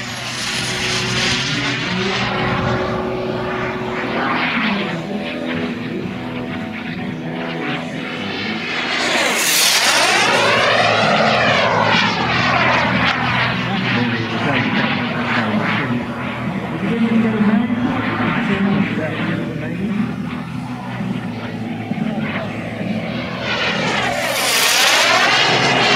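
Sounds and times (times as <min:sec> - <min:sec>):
model jet turbine passing: 0:00.0 - 0:25.9.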